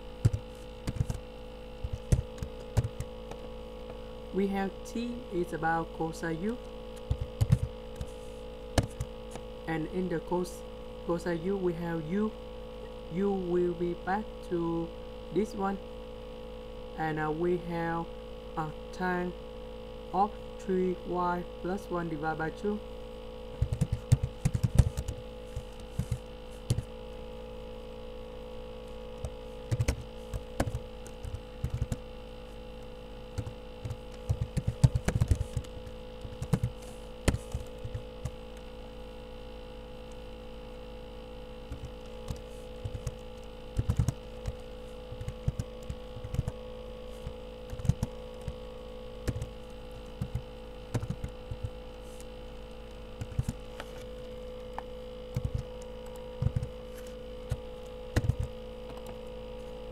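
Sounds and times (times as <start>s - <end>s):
steady electrical hum: 0.0s - 59.9s
typing on computer keyboard: 0.2s - 1.2s, 7.0s - 8.1s, 23.6s - 26.9s, 29.2s - 32.0s, 33.4s - 36.7s, 41.7s - 46.6s, 47.7s - 48.5s, 58.2s - 58.5s.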